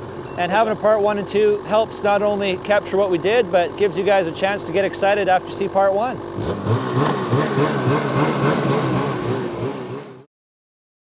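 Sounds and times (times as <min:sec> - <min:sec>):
snowmobile engine running: 0:00.6 - 0:10.3.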